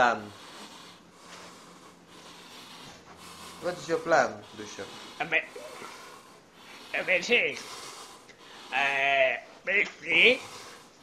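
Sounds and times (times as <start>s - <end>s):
man speaking: 3.6s - 6.0s, 6.9s - 7.7s, 8.7s - 10.6s.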